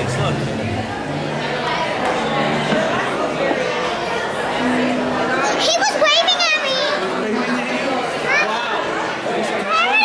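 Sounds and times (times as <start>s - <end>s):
general voices: 0.0s - 10.0s.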